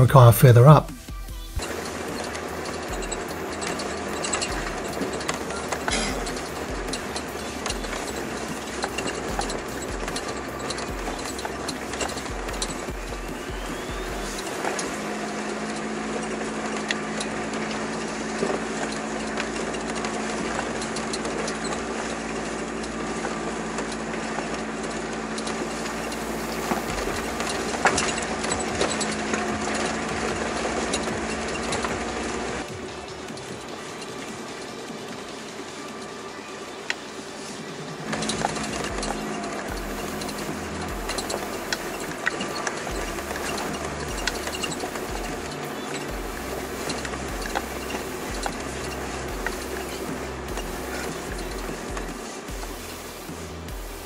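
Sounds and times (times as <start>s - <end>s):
steady hum: 0.0s - 21.5s, 24.9s - 54.0s
vehicle engine running: 0.0s - 54.0s
wheels clattering over stones: 1.6s - 54.0s.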